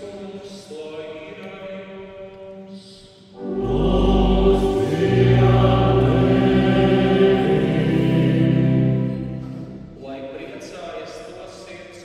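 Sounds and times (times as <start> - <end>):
organ chord: 3.4 - 10.1
choir holding a chord: 3.4 - 10.2.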